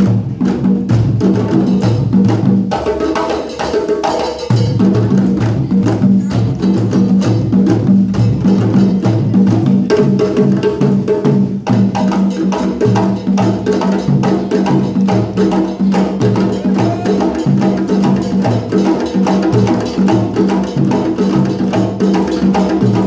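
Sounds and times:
djembes played by hand: 0.0 - 23.0
drum kit played with sticks: 0.0 - 23.0.

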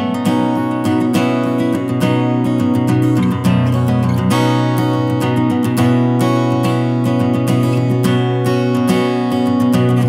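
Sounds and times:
strummed acoustic guitar folk music: 0.0 - 10.0.

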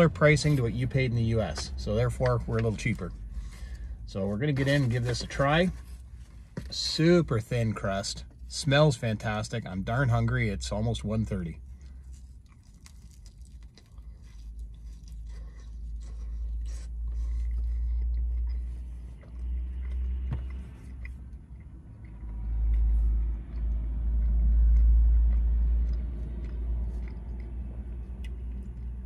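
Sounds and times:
man chewing crunchy pizza: 0.0 - 29.0.

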